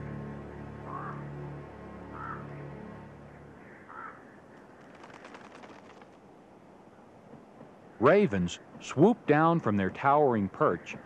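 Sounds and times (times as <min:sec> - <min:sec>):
soft background music: 0:00.0 - 0:04.2
ravens croaking: 0:00.4 - 0:11.0.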